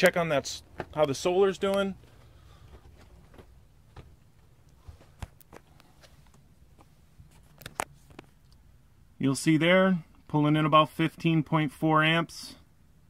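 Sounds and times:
low steady hum: 0:00.0 - 0:13.0
footsteps and handling knocks: 0:00.6 - 0:08.4.

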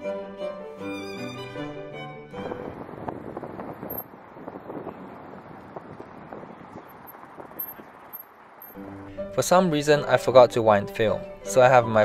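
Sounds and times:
string and piano music: 0:00.0 - 0:03.0, 0:08.8 - 0:12.0
wind on microphone: 0:02.4 - 0:08.1
distant traffic hum: 0:03.1 - 0:09.0.

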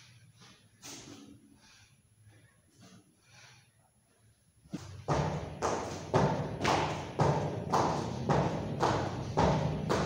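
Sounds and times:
shoes thudding on rubber tyre: 0:04.8 - 0:10.0.

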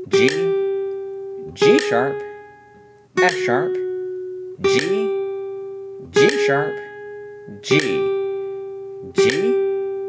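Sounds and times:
classical guitar plucked note: 0:00.0 - 0:10.0.

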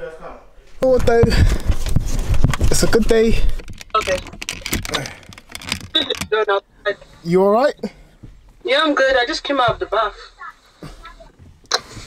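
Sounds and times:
camera handling rustling and clicks: 0:01.5 - 0:06.4.

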